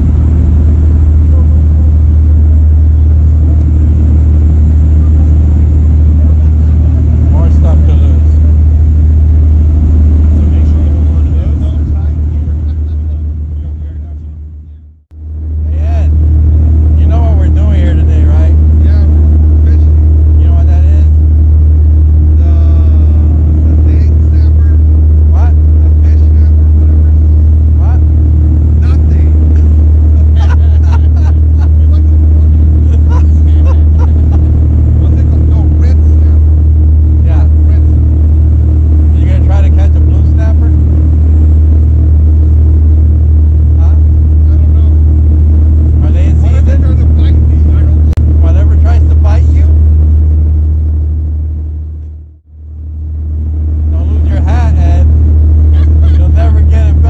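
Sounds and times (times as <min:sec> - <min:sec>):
boat engine drone: 0:00.0 - 0:57.0.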